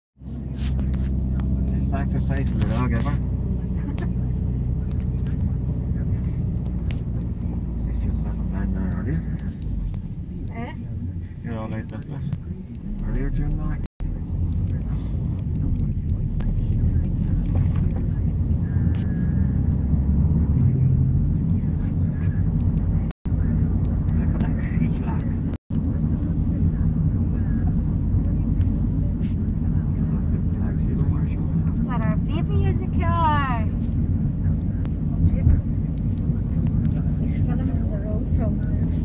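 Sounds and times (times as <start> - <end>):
car road and engine rumble: 0.2 - 39.0.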